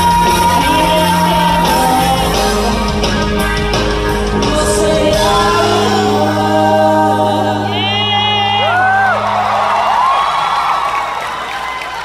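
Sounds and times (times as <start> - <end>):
crowd cheering and screaming: 7.6 - 12.0.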